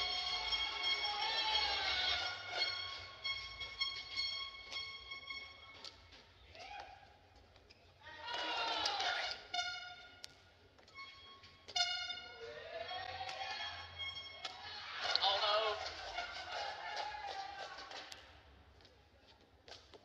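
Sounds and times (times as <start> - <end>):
shoes squeaking on court: 0.0 - 8.0, 9.1 - 12.4.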